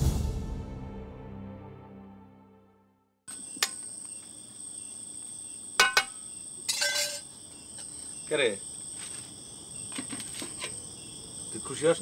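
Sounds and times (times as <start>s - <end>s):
crickets chirring: 3.3s - 12.0s.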